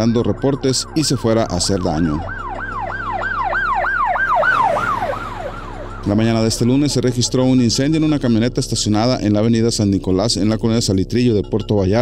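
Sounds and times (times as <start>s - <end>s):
electronic siren yelping: 0.0s - 8.3s.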